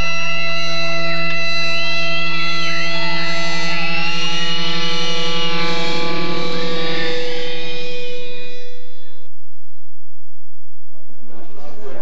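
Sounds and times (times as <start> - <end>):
electric guitar drone: 0.0 - 9.8
high feedback squeals: 0.0 - 9.8.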